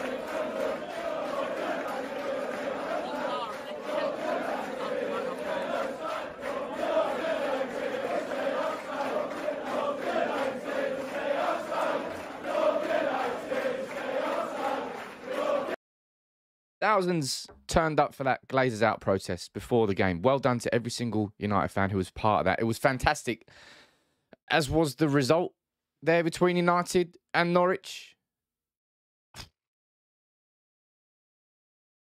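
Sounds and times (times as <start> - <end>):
crowd chanting: 0.0 - 15.8.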